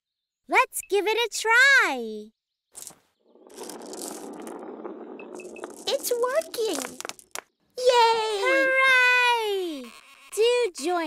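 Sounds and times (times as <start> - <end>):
marble rolling down toy ramps: 2.8 - 7.5.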